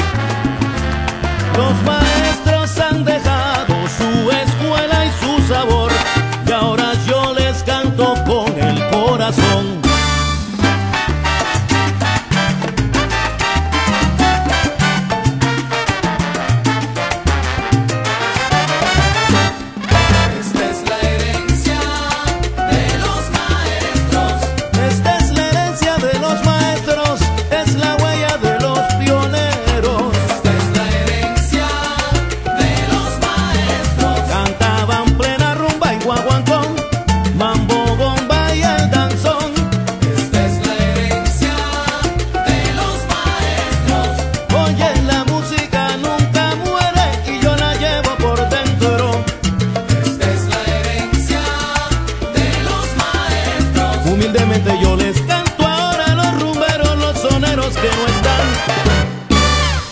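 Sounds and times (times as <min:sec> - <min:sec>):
dense percussion: 0:00.0 - 0:59.9
salsa band music: 0:00.0 - 0:59.9
syncopated bass line: 0:00.0 - 0:59.9.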